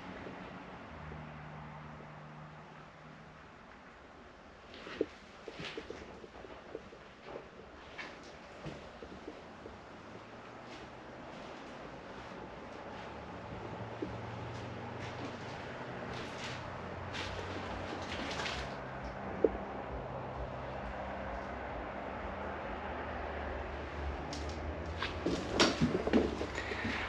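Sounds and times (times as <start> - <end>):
road traffic rumble: 0.0 - 27.0
knocks and creaks: 4.7 - 21.9, 24.0 - 27.0.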